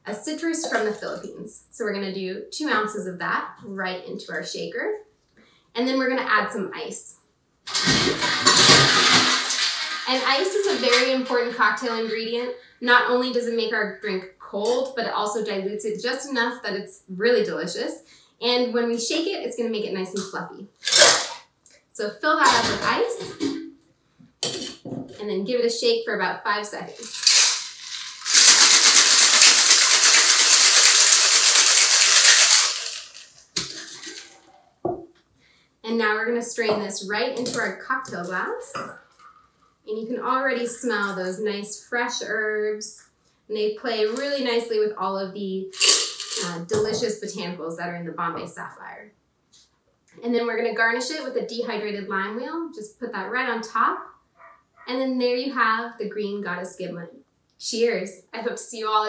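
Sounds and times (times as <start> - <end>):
ice cubes rattling in metal bucket: 7.7 - 12.4, 20.8 - 21.4, 27.0 - 34.4, 45.7 - 46.6
shaker tins pulled apart thud: 20.8 - 21.4, 27.0 - 34.4, 45.8 - 46.5.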